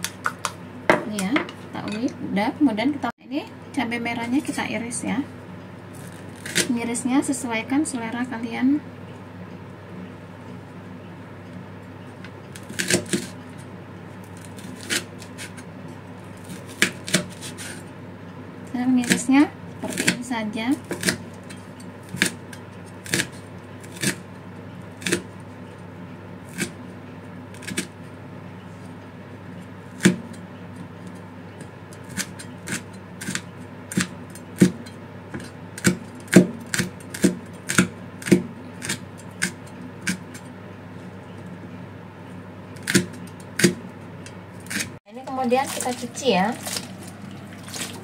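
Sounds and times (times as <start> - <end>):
knife chopping on cutting board: 32.1 - 40.5.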